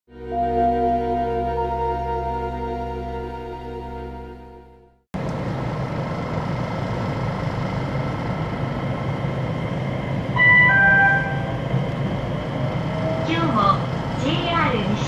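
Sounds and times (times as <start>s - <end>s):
music: 0.1s - 5.0s, 10.4s - 11.4s
electric train cabin rumble: 5.2s - 15.0s
electronic chime: 10.4s - 11.6s.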